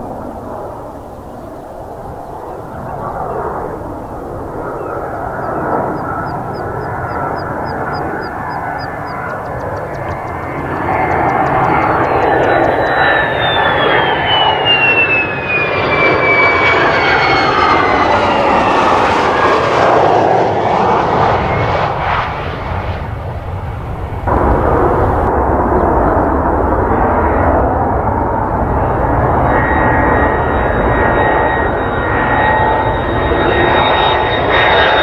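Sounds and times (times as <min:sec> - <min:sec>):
high turbine whine: 0:00.0 - 0:35.0
jet engine roar: 0:00.0 - 0:35.0.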